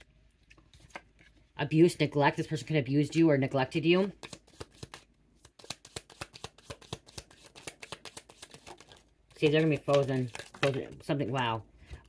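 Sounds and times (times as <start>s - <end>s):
cards being shuffled: 4.0s - 11.5s.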